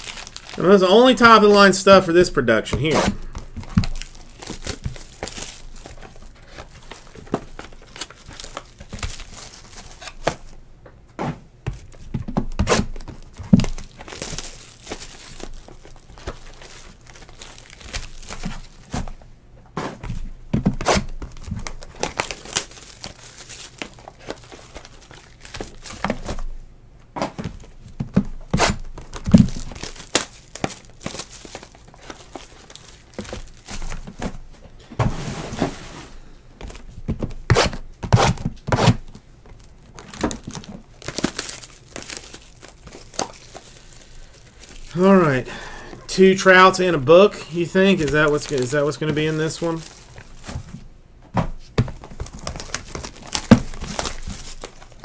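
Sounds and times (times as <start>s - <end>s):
plastic wrap crinkling and tearing: 0.0s - 2.1s, 2.8s - 10.6s, 11.8s - 19.2s, 20.8s - 26.6s, 27.4s - 34.5s, 36.6s - 45.5s, 46.3s - 50.9s, 51.7s - 55.0s.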